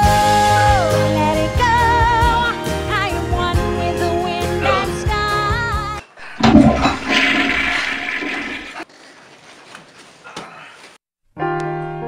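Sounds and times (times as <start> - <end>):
toilet flushing: 6.2 - 8.8.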